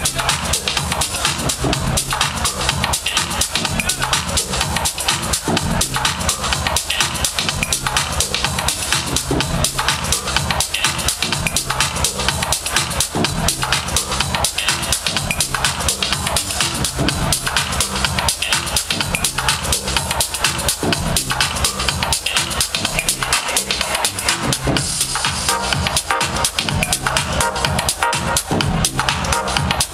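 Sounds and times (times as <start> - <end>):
kick drum beat: 0.0 - 23.3, 24.6 - 29.9
loud house music: 0.0 - 29.9.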